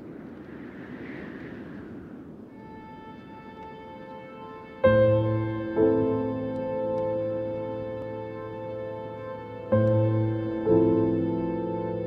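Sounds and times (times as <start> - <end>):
drone of held musical tones: 0.0 - 12.0
rumbling ambient noise: 0.0 - 12.0.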